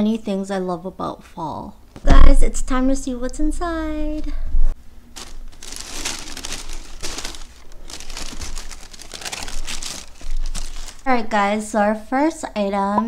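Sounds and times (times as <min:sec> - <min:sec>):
tissue paper rustling and crinkling: 0:05.2 - 0:11.3.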